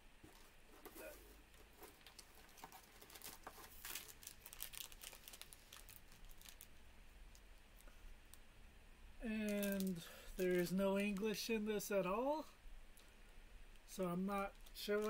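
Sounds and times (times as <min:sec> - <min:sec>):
snack wrapper crinkling: 0:01.8 - 0:06.7, 0:09.5 - 0:10.6, 0:14.5 - 0:15.0.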